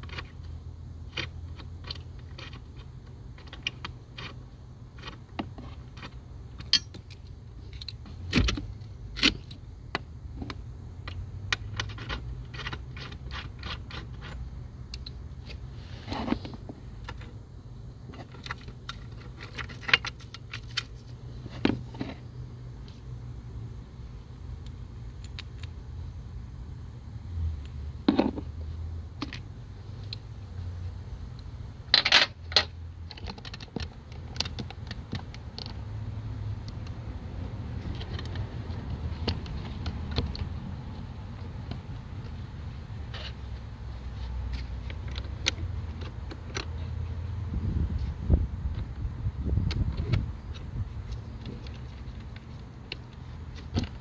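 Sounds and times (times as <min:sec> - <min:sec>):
light metallic clicks and creaks: 0:00.0 - 0:23.2, 0:24.5 - 0:25.9, 0:27.6 - 0:30.4, 0:31.3 - 0:54.0.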